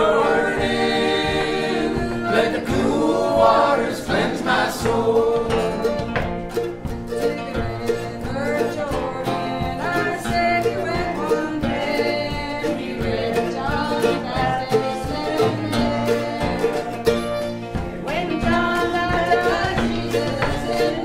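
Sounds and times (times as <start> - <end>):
acoustic guitars strumming: 0.0 - 21.0
voices singing gospel song: 0.0 - 21.0.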